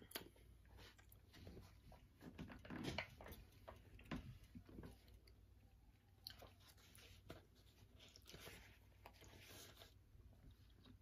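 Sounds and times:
person chewing: 0:00.0 - 0:02.0, 0:03.7 - 0:11.0.

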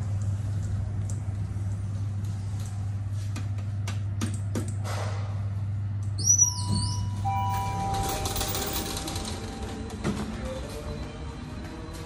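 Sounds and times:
lift high squeal: 0:06.2 - 0:12.0
steady ringing tones: 0:06.4 - 0:10.7.

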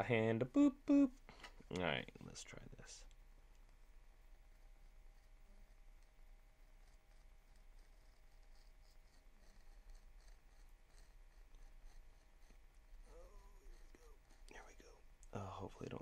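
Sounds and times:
knife scratching film on paper: 0:03.6 - 0:14.6.

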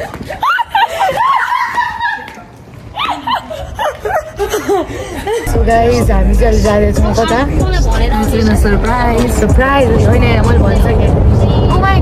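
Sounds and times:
young women laughing: 0:00.0 - 0:05.7.

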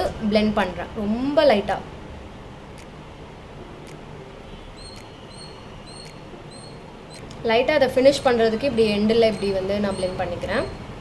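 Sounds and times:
room noise: 0:00.0 - 0:11.0
small bird chirping: 0:04.8 - 0:07.3, 0:08.8 - 0:10.9.

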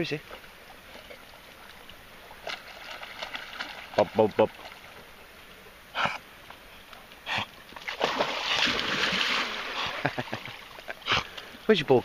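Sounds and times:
dogs splashing in water: 0:02.4 - 0:04.9, 0:07.2 - 0:11.5.

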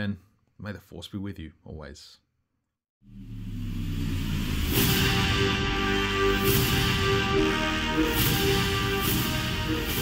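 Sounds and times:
rushing swell: 0:03.0 - 0:10.0
low droning hum: 0:03.1 - 0:06.3.

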